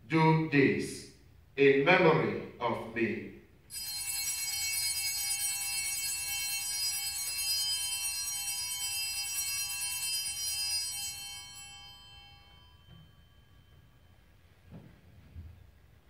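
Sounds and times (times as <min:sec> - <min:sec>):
bells ringing: 0:03.7 - 0:14.7.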